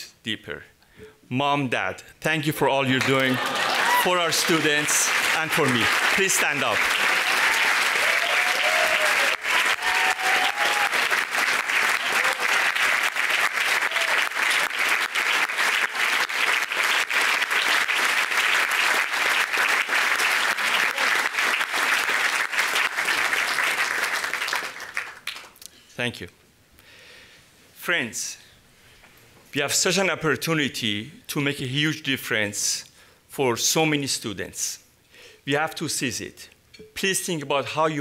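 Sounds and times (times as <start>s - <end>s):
large audience applauding: 2.9s - 25.6s.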